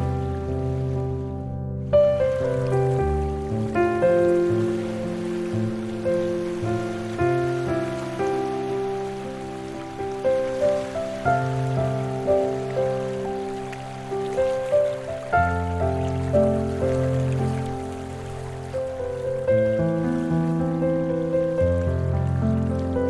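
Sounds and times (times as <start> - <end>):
soft piano chords: 0.0 - 23.0.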